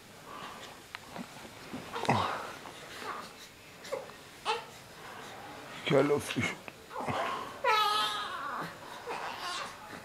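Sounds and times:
baby whimpering cry: 1.9s - 4.8s, 6.9s - 9.9s
baby fussing: 1.9s - 4.9s.

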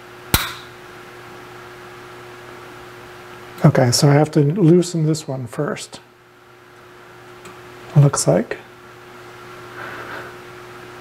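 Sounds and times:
steady low hum: 0.0s - 11.0s
sharp metallic click: 0.3s - 0.8s.

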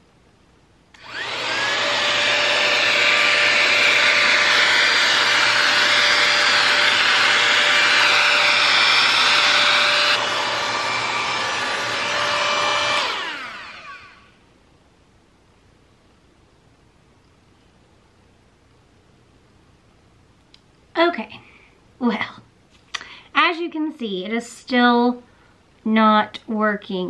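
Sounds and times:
hair styler fan whine: 0.9s - 14.5s.

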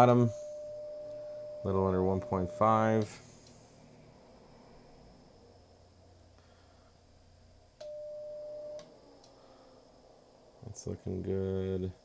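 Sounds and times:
steady radio beep: 0.0s - 3.1s
faint low hum: 0.0s - 12.0s.

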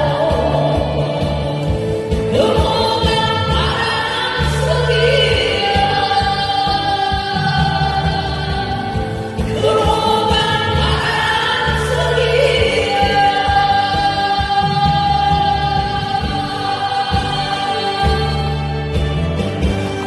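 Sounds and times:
backing track with bass line: 0.0s - 20.0s
women singing into microphones: 0.0s - 20.0s.

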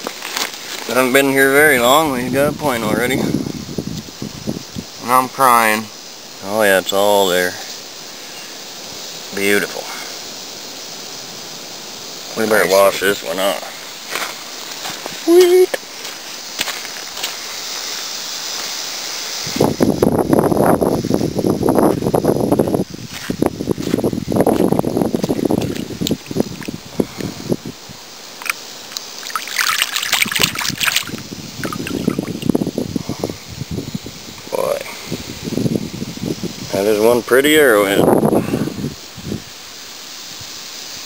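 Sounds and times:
steady hiss: 0.0s - 41.0s
hand splashing in shallow water: 28.4s - 32.5s.

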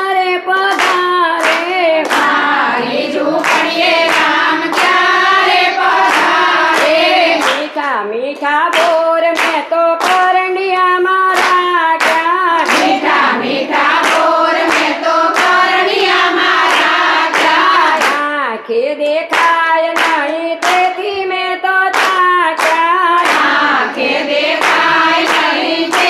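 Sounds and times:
hand clapping: 0.0s - 18.5s, 19.2s - 26.0s
women singing devotional song: 0.0s - 26.0s.

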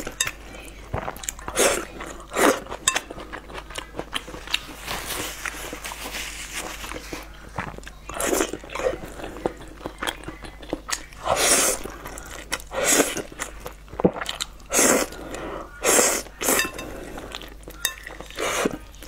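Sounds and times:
person slurping noodles: 11.2s - 11.9s, 12.7s - 13.3s, 14.0s - 17.2s
wet chewing and mouth clicks: 12.0s - 15.4s.

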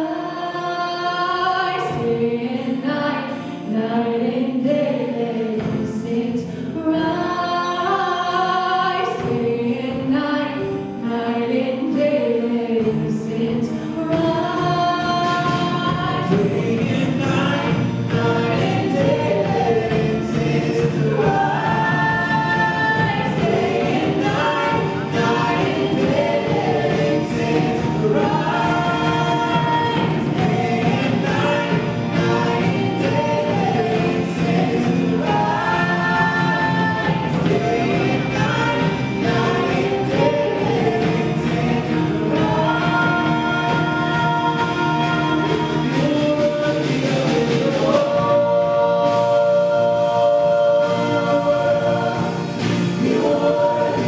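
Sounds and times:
woman singing lead: 0.0s - 54.0s
worship band playing: 0.0s - 54.0s.

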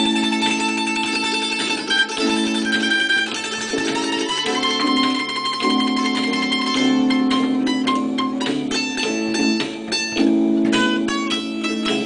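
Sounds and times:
plucked mandolin notes: 0.0s - 12.0s
sustained keyboard chords: 0.0s - 12.0s.

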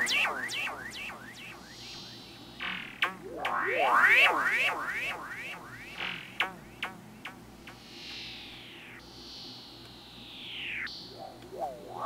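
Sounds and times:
synthetic swept tones: 0.0s - 12.0s.

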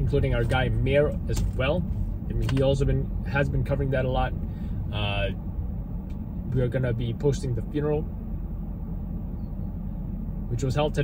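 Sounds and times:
low vehicle rumble inside car: 0.0s - 11.0s.

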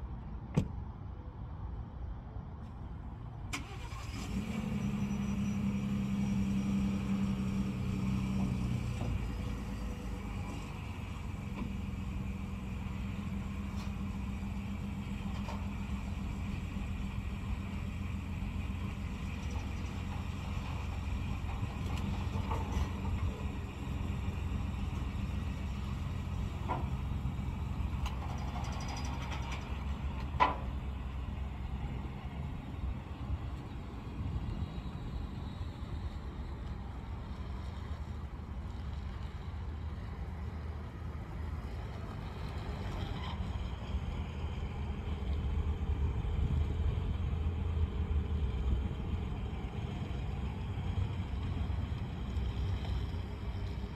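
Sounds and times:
truck engine starting and idling: 2.8s - 53.9s.

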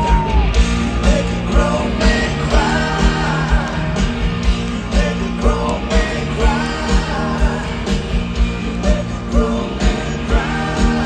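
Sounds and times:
drum beat: 0.0s - 11.0s
guitar: 0.0s - 11.0s
live rock band: 0.0s - 11.0s
man singing: 0.9s - 4.0s, 4.8s - 8.0s, 8.7s - 11.0s.

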